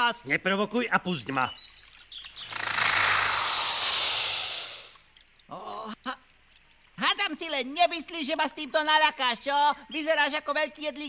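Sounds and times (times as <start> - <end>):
loud airy hiss: 2.4 - 5.0.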